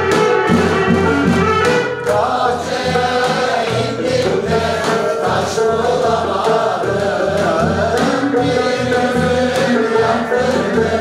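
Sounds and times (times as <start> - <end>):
choir singing sustained notes: 2.0 - 11.0.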